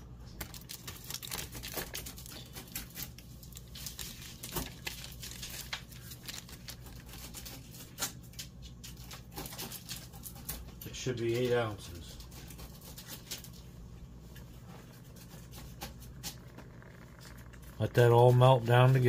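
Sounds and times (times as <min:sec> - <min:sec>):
low steady hum: 0:00.0 - 0:19.0
milk popping and crackling in a skillet: 0:00.3 - 0:10.6, 0:14.3 - 0:19.0.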